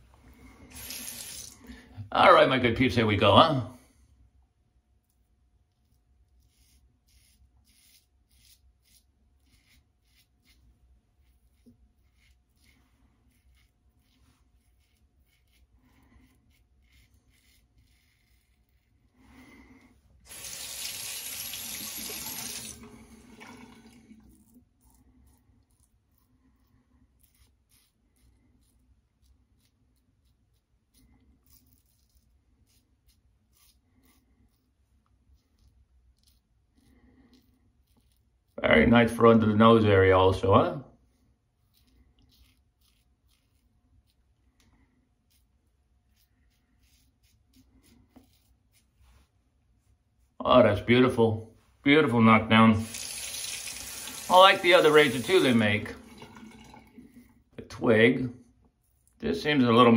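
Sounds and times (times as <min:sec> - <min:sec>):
sink tap running: 0:00.7 - 0:01.6, 0:20.3 - 0:24.2, 0:52.8 - 0:57.0
razor scraping stubble: 0:05.7 - 0:19.6, 0:20.3 - 0:40.0, 0:41.5 - 0:49.0, 0:52.8 - 0:57.2.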